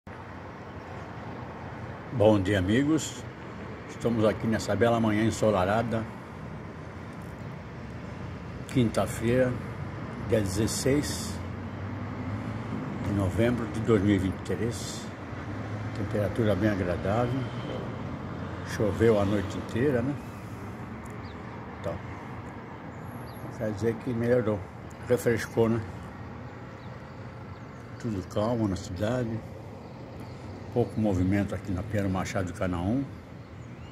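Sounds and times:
distant street traffic hum: 0:00.0 - 0:33.9.

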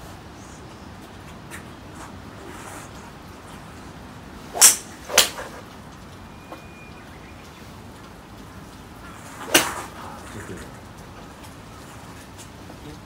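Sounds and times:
steady background hiss: 0:00.0 - 0:13.0
golf club striking ball: 0:04.5 - 0:05.6, 0:09.4 - 0:09.9.

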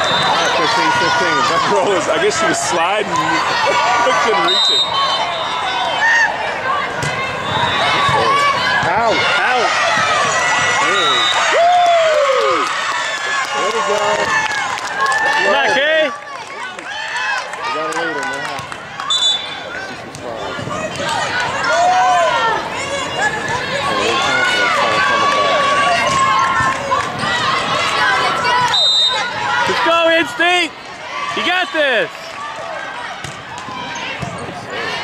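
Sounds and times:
people shouting and cheering: 0:00.0 - 0:35.0.

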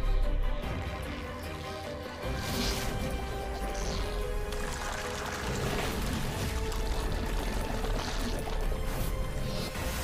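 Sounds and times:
dramatic action score: 0:00.0 - 0:10.0.

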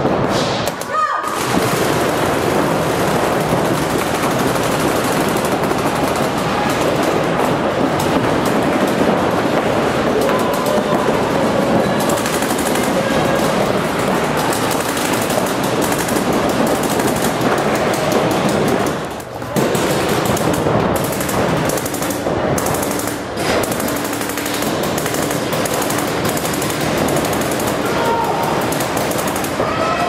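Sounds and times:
paintball markers firing: 0:00.0 - 0:30.0.

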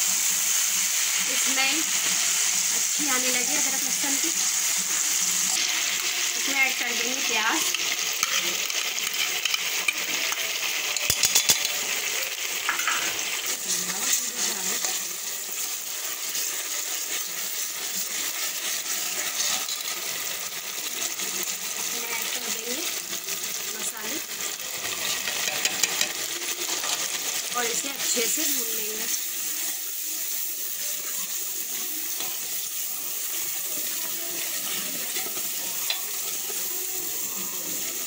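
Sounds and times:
paste sizzling in hot oil: 0:00.0 - 0:38.0
metal ladle scraping pot: 0:24.8 - 0:27.0.

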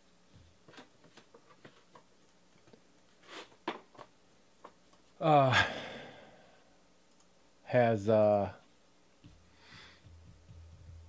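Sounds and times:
man sighing: 0:05.2 - 0:06.7
faint clicks: 0:07.1 - 0:07.3.

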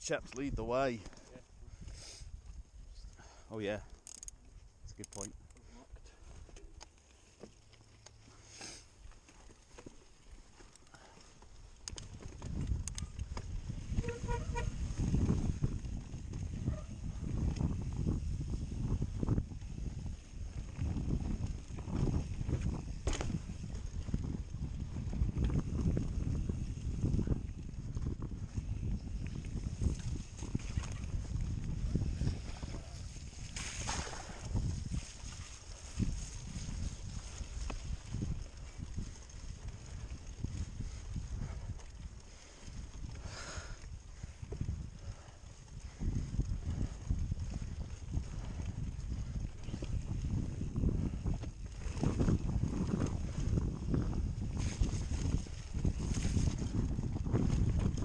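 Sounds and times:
bike tyres rumbling and rattling: 0:06.3 - 0:58.0
wind buffeting microphone: 0:11.7 - 0:58.0
short honk-like call: 0:14.0 - 0:14.7.

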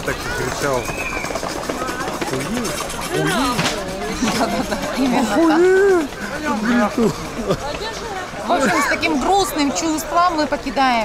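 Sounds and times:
people talking: 0:01.7 - 0:11.0.

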